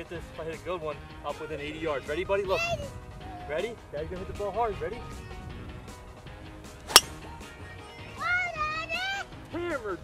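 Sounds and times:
golf club striking ball: 6.9 - 7.2.

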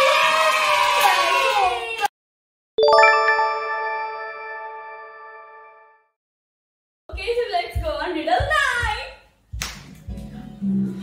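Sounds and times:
children cheering: 0.0 - 2.1
hand claps: 9.6 - 10.1.

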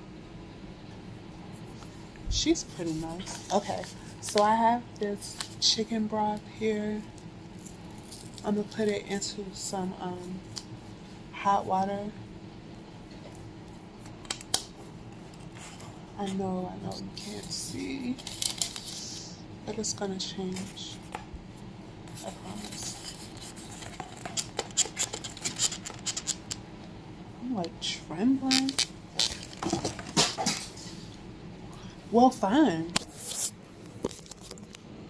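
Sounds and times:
low steady hum: 0.0 - 35.0.

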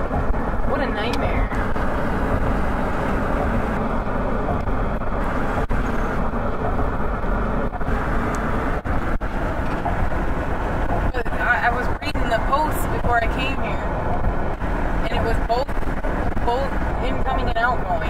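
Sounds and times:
car engine running: 0.0 - 18.0
road and tyre noise: 0.0 - 18.0.

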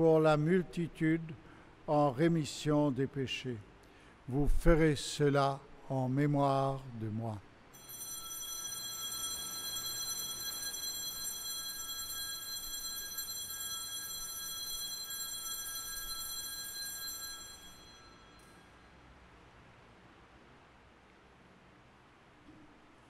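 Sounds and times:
altar bells ringing: 7.8 - 18.8.

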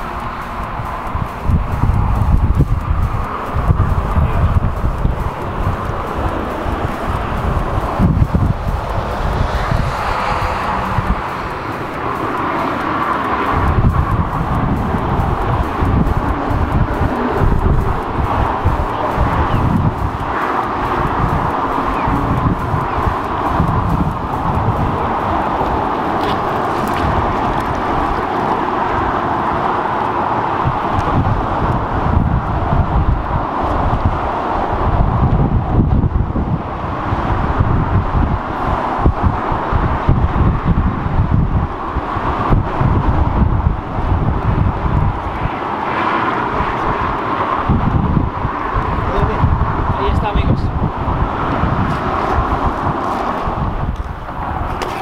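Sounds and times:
steady hiss: 0.0 - 29.2
wind buffeting microphone: 0.0 - 55.0.

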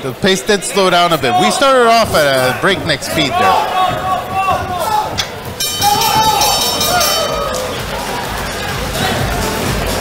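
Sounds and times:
shouting voices: 0.0 - 10.0
boxing ring bell ringing: 5.5 - 7.6.

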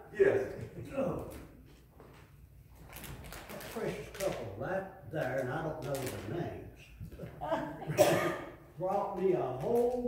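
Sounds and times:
man speaking in low voice: 3.5 - 7.0, 8.8 - 10.0.

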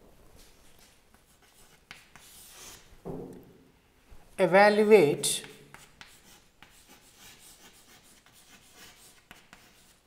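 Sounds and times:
chalk scratching on chalkboard: 0.8 - 2.9, 5.3 - 10.0.

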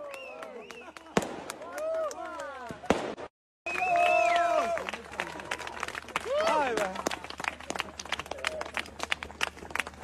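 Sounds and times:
small firework cracks: 0.2 - 3.3
fireworks bangs: 1.1 - 3.3.

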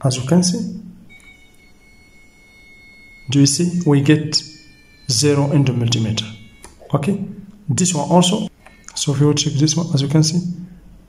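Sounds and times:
multimeter continuity beep: 0.7 - 10.8.

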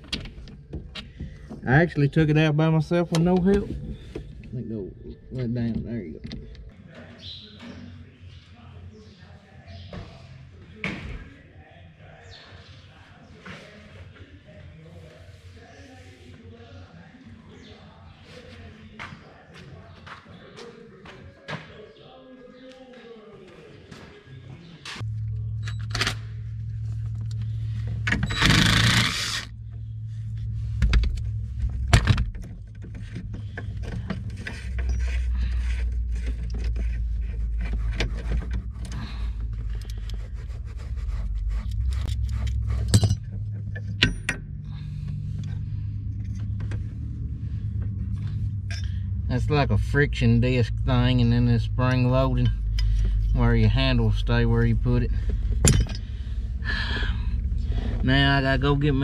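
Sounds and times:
steady low hum: 25.0 - 59.0
metal parts clinking and scraping: 41.7 - 44.4.

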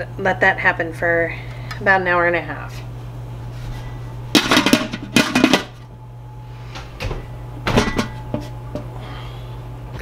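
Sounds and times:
steady low hum: 0.0 - 10.0
metal roasting pan clattering: 4.4 - 5.8, 7.7 - 8.5.

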